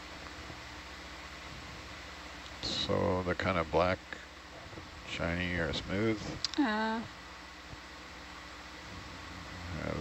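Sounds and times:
faint low electrical hum: 0:00.0 - 0:10.0.

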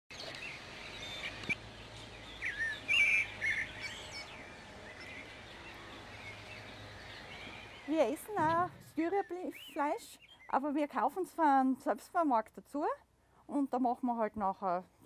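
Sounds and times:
songbirds singing and calling: 0:00.1 - 0:11.3.

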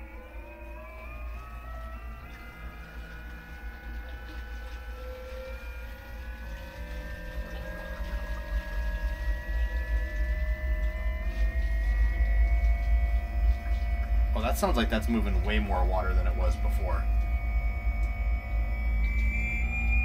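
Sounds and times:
water pump whining: 0:00.0 - 0:20.0.

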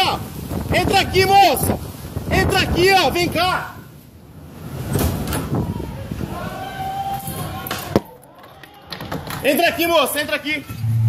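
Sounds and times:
windstorm rumble: 0:00.0 - 0:08.0.

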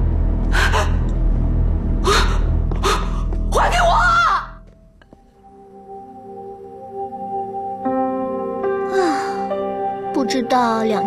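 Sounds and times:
low tense musical drone: 0:00.0 - 0:10.1
woman gasping: 0:00.5 - 0:01.1, 0:02.0 - 0:03.5.

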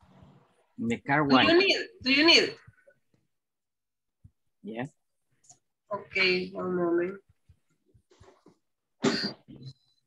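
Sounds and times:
person coughing: 0:09.0 - 0:09.8.

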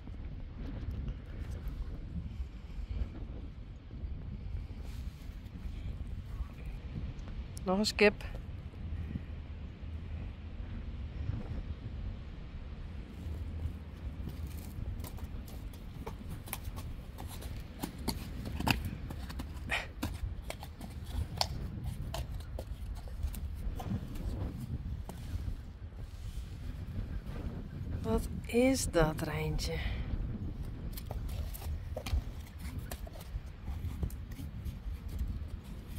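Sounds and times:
steady low rumble: 0:00.0 - 0:35.9
hooves knocking on concrete: 0:14.2 - 0:25.3, 0:30.6 - 0:35.9.

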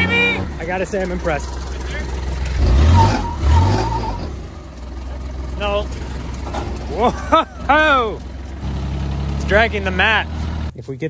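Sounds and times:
vehicle engine revving: 0:00.0 - 0:10.7.

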